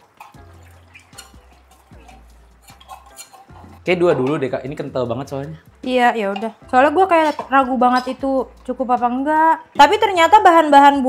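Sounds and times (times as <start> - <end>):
metal spoon scraping container: 0.0 - 4.5, 6.4 - 8.2.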